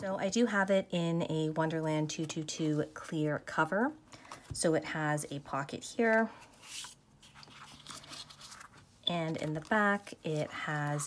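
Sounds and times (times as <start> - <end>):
plastic and paper crinkling: 6.6 - 11.0.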